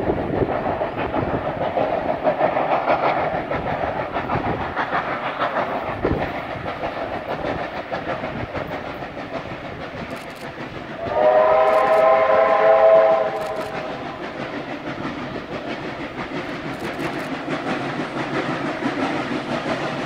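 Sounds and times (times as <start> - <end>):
steam locomotive running: 0.0 - 20.0
steam whistle blast: 11.0 - 13.8.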